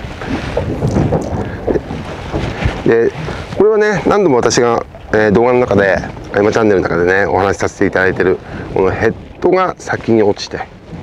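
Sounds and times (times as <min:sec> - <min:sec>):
boat and sea rumble: 0:00.0 - 0:11.0
wind buffeting microphone: 0:00.0 - 0:11.0.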